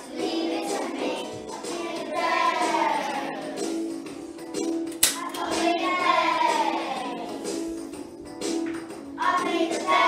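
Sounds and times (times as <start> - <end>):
children singing over music: 0.0 - 10.0.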